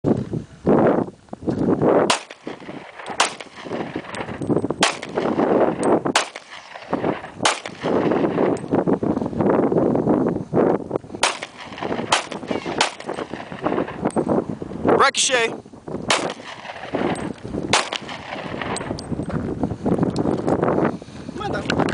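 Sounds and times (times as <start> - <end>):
pistol shots: 2.0 - 8.6, 11.2 - 14.1, 16.1 - 19.0.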